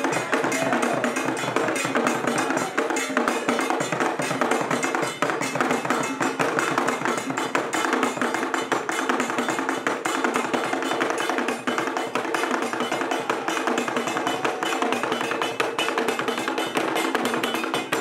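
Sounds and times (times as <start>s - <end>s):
hand drum ensemble playing: 0.0s - 18.0s.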